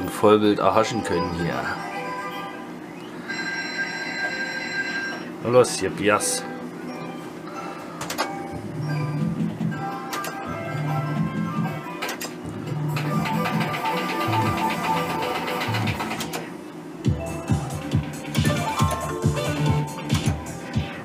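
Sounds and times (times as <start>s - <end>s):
slot machine electronic melody: 0.1s - 16.5s, 17.1s - 21.0s.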